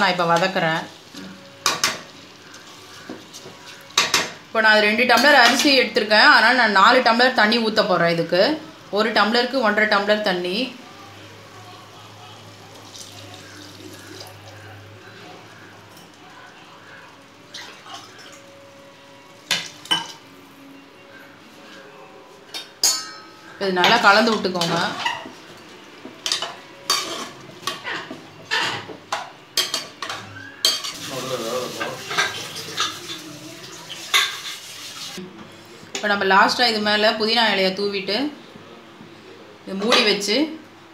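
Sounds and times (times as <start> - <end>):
water pouring into pot: 12.7 - 14.6, 31.0 - 35.2
metal utensil clinking on pot: 22.5 - 25.3, 26.2 - 31.0
vessel clinking against pot: 22.8 - 23.4.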